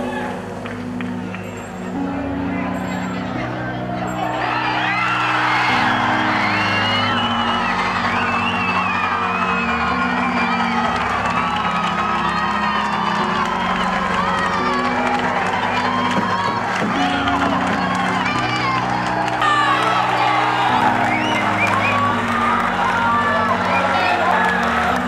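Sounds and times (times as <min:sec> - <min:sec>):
stadium crowd cheering: 0:00.0 - 0:25.0.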